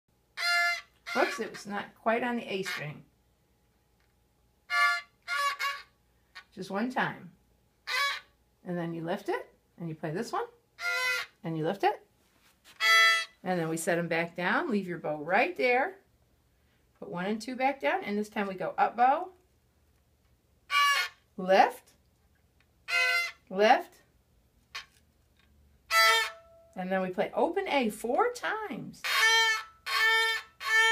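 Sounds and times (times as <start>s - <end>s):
violin bowed notes: 0.3s - 3.0s, 4.7s - 5.9s, 10.8s - 11.4s, 12.8s - 13.4s, 20.7s - 21.2s, 22.9s - 23.5s, 25.9s - 26.8s, 29.0s - 30.9s.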